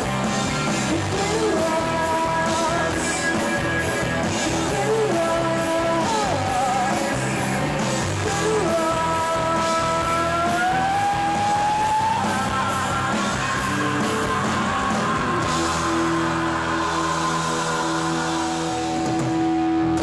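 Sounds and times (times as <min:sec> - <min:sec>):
live rock band: 0:00.0 - 0:20.0
woman singing: 0:00.9 - 0:03.7, 0:04.4 - 0:07.3, 0:08.1 - 0:19.1.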